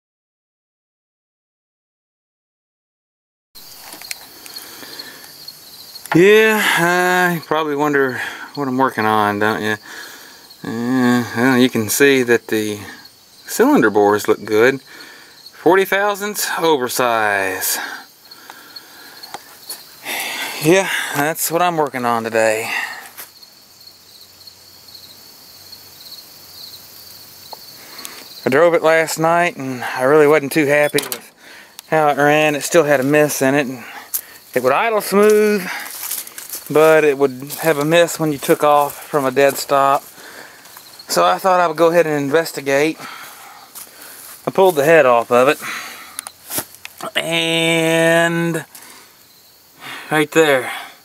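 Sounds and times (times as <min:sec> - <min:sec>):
faint hiss: 0:03.6 - 0:23.4
insects chirping: 0:03.6 - 0:51.0.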